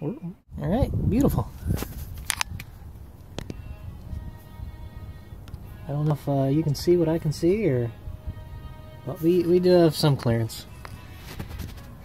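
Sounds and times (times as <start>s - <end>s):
faint background music: 0.0s - 12.0s
camera handling clicks: 2.2s - 2.7s
rustling: 11.0s - 12.0s.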